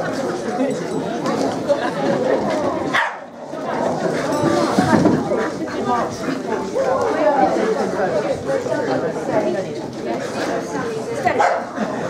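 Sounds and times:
people chatting: 0:00.0 - 0:12.0
dog barking: 0:02.9 - 0:03.3, 0:11.4 - 0:11.7.

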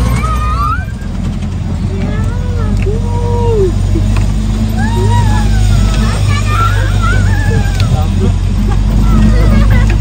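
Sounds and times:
passengers calling out: 0:00.0 - 0:10.0
vehicle engine droning: 0:00.0 - 0:10.0.

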